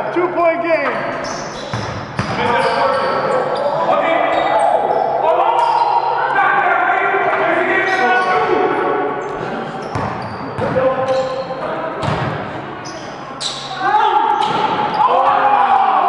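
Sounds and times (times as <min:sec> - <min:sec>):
players calling out: 0:00.0 - 0:16.0
sneakers squeaking: 0:00.8 - 0:06.4, 0:09.2 - 0:15.4
basketball bouncing on hard court: 0:01.7 - 0:02.5, 0:09.9 - 0:10.8, 0:12.0 - 0:12.4.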